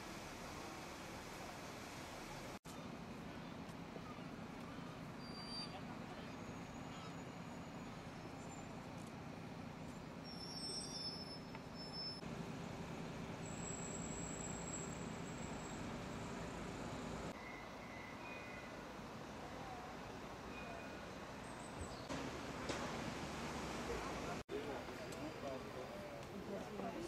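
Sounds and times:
traffic hum: 0.0s - 27.0s.

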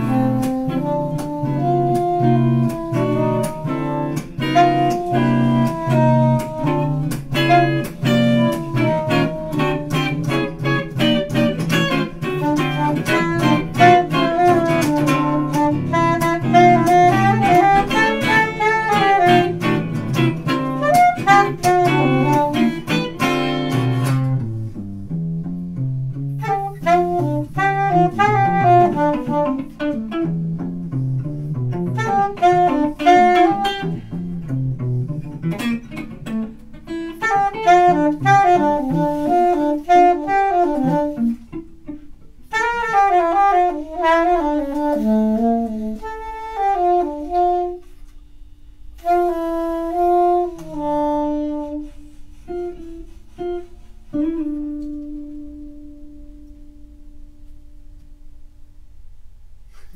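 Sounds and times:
alto saxophone melody: 0.0s - 58.3s
electric guitar accompaniment: 0.0s - 58.8s.

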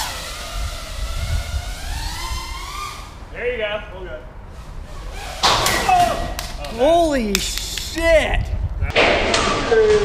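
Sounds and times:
drone motors whining: 0.0s - 3.3s.

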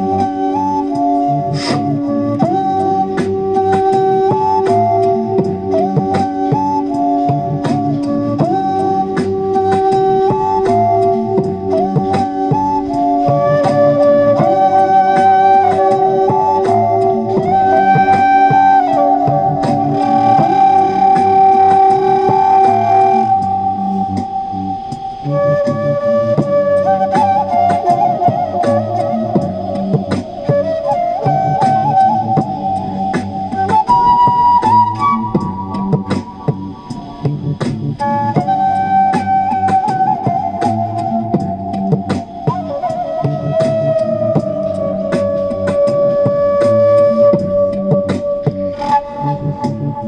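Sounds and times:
steady percussive beat: 0.0s - 50.0s
wooden flute melody: 0.0s - 50.0s.

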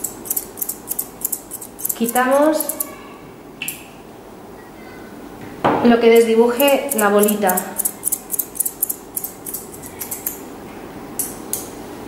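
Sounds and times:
scissors snipping: 0.0s - 2.9s, 6.2s - 10.4s.

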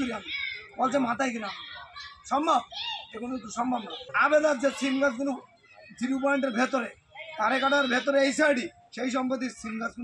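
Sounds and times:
man speaking: 0.0s - 1.6s, 2.3s - 10.0s.

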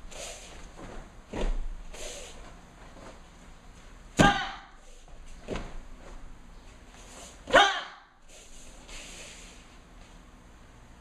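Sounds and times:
foot thudding on foam mat: 0.6s - 3.3s, 4.1s - 6.4s.

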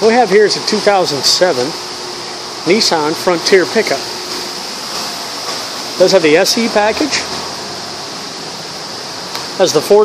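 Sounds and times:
steady room noise hiss: 0.0s - 10.0s.

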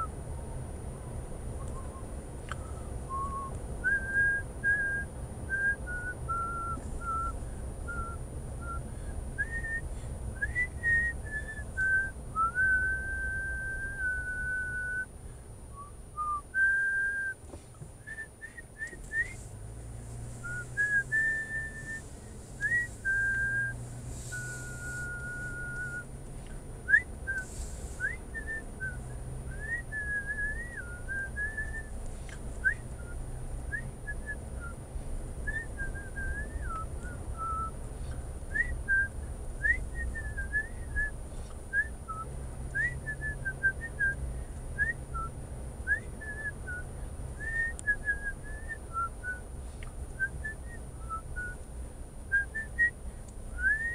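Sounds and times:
low hum of car driving: 0.0s - 53.9s
person whistling a tune: 1.6s - 15.1s, 15.7s - 17.4s, 18.0s - 19.5s, 20.4s - 26.2s, 26.9s - 32.0s, 32.6s - 34.8s, 35.4s - 37.8s, 38.5s - 44.2s, 44.8s - 49.5s, 50.2s - 51.6s, 52.3s - 53.0s, 53.6s - 53.9s.

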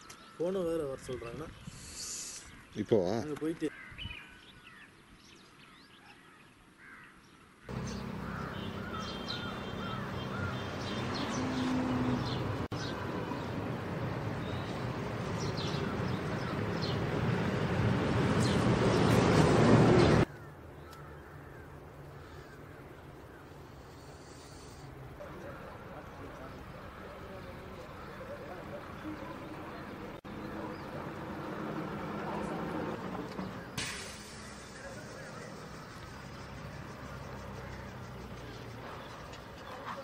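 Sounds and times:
birds calling: 0.0s - 40.0s.

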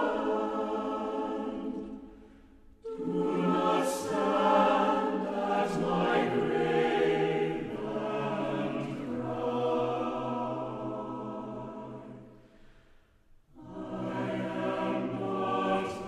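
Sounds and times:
choir singing sustained chords: 0.0s - 16.0s.

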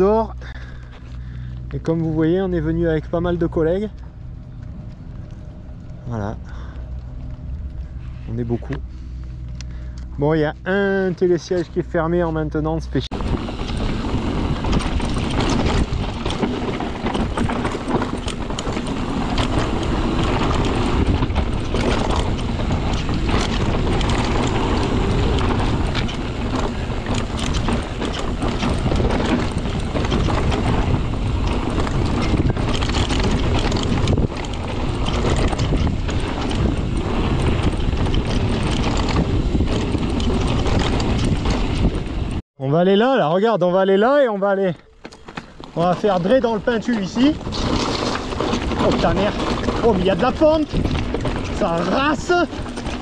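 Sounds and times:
tyre and wind rush: 0.0s - 42.4s, 44.9s - 53.0s
bike clattering over bumps: 13.1s - 42.4s, 44.9s - 53.0s.

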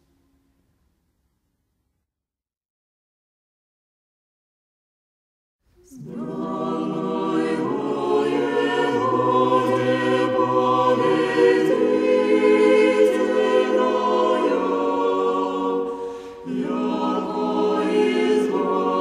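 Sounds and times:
church choir singing a cappella: 5.8s - 19.0s.

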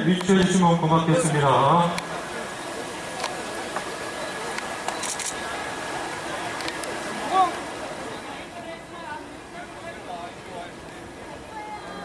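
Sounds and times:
murmur of crowd: 0.0s - 12.0s.

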